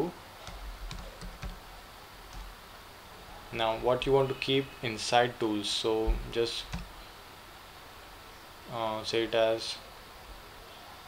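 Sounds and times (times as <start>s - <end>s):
keyboard key presses: 0.4s - 1.6s, 2.3s - 2.5s, 6.6s - 7.0s.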